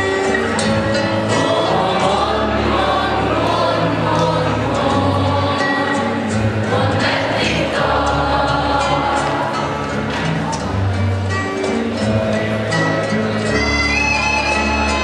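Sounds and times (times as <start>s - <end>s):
low instrumental accompaniment: 0.0s - 15.0s
choir singing: 1.0s - 10.5s.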